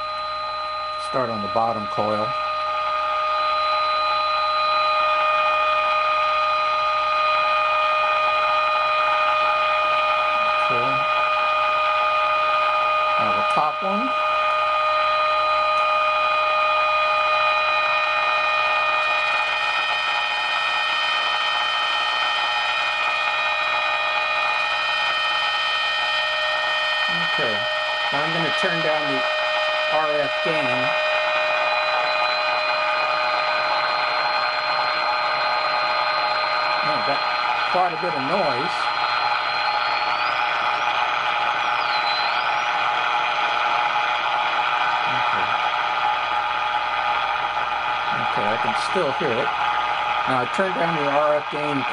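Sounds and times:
steady pitched tone: 0.0s - 51.9s
radio hiss: 10.6s - 11.1s, 27.0s - 44.0s, 44.8s - 46.2s, 48.0s - 51.9s.

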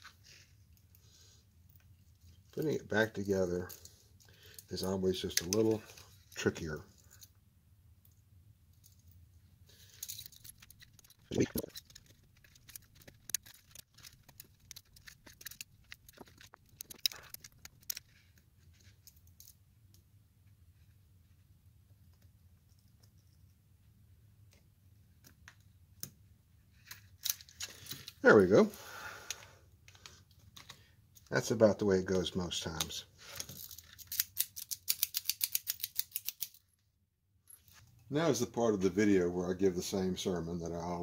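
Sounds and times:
ball chain rattling and clicking: 9.9s - 18.1s.

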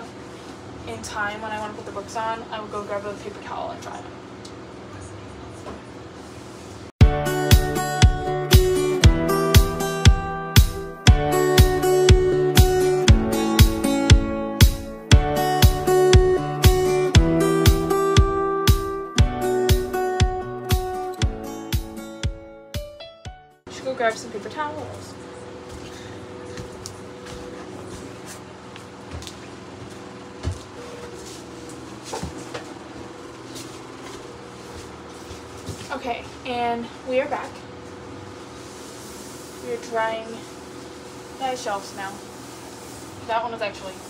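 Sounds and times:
steady room hum: 0.0s - 7.0s, 23.7s - 44.0s.

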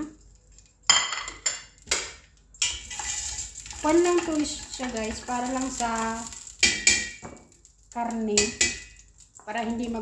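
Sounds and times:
metallic knocks on steel pot: 6.6s - 7.4s, 8.3s - 9.0s.

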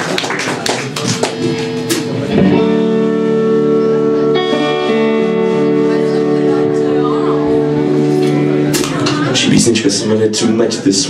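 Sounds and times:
electric guitar taps and clicks: 0.1s - 2.7s, 8.2s - 9.3s
held electric guitar note: 1.1s - 9.5s.

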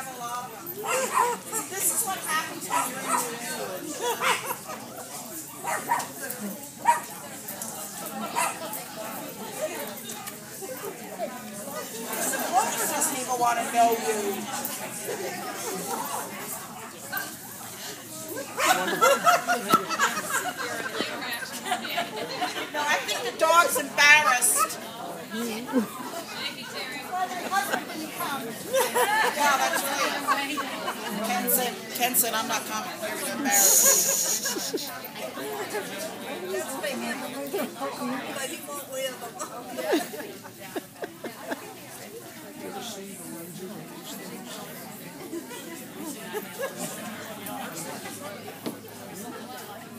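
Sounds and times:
people chatting: 0.0s - 49.9s
dog barking: 0.8s - 1.4s, 2.7s - 3.3s, 5.6s - 6.1s, 8.4s - 8.6s.

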